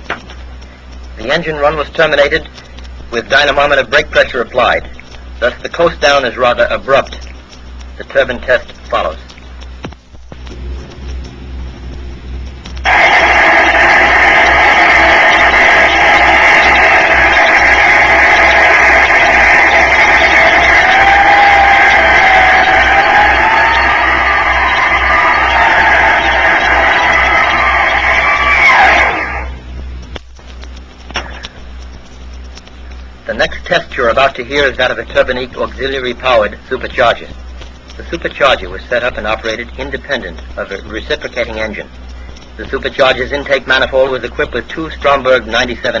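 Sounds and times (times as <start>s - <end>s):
gas turbine roaring: 0.0s - 46.0s
turbine whine: 0.0s - 46.0s.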